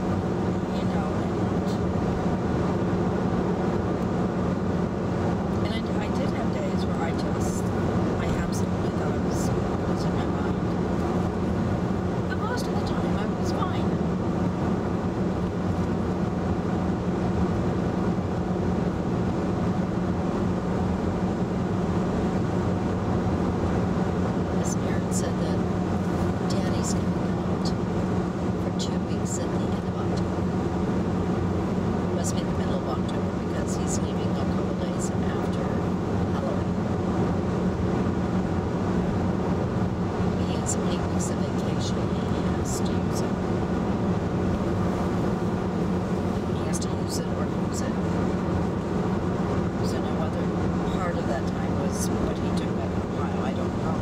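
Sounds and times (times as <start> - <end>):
car engine hum: 0.0 - 54.0
road and tyre noise: 0.0 - 54.0.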